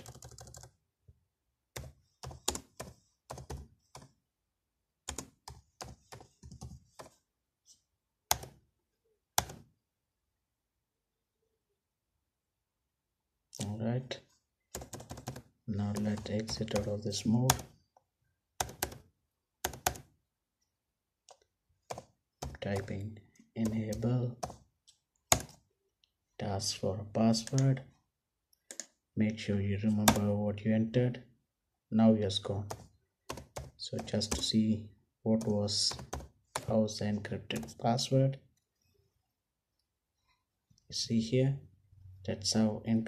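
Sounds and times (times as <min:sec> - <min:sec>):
computer keyboard typing: 0:00.0 - 0:00.8, 0:01.7 - 0:04.2, 0:05.0 - 0:07.2, 0:08.3 - 0:08.6, 0:09.3 - 0:09.7, 0:14.7 - 0:17.8, 0:18.6 - 0:20.1, 0:21.3 - 0:23.0, 0:23.6 - 0:25.6, 0:28.7 - 0:29.0, 0:30.0 - 0:30.4, 0:32.6 - 0:34.6, 0:35.4 - 0:36.7.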